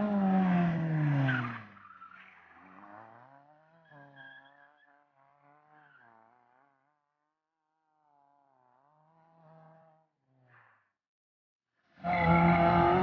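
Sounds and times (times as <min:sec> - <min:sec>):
rally car engine revving: 0:00.0 - 0:06.9, 0:07.7 - 0:10.8, 0:12.0 - 0:13.0.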